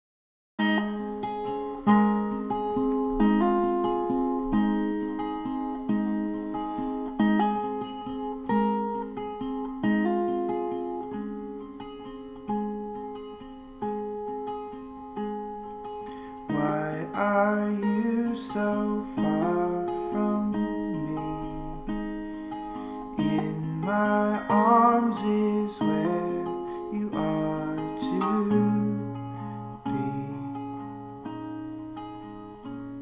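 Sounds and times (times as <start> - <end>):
acoustic guitar playing: 0.6 - 33.0
person singing: 16.4 - 21.9, 23.1 - 31.0.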